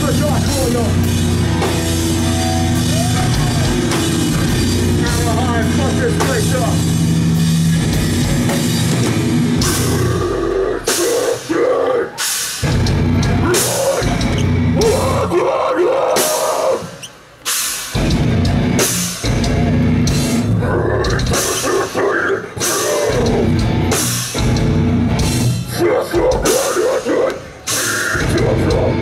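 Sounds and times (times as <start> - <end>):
shouted vocals: 0.0 - 3.9, 9.7 - 12.3, 13.2 - 17.0
hardcore band playing: 0.0 - 29.0.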